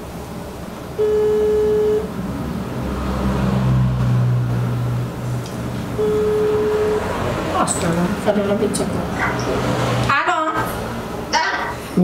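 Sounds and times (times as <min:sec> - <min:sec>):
low hum: 0:00.0 - 0:03.2, 0:03.8 - 0:08.4
telephone ringback tone: 0:01.0 - 0:02.1, 0:06.0 - 0:07.3.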